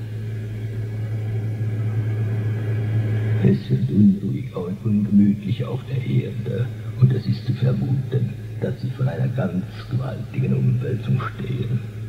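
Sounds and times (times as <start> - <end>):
low electronic hum with hiss: 0.0 - 12.0.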